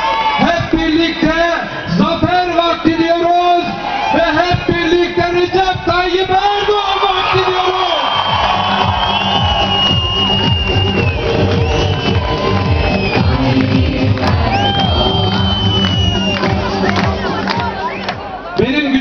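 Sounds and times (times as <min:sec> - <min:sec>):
crowd cheering and shouting: 0:00.0 - 0:19.0
loud music: 0:07.4 - 0:19.0.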